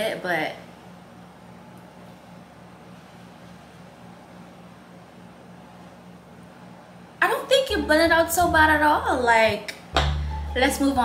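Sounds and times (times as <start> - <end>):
low hum: 10.0 - 11.0.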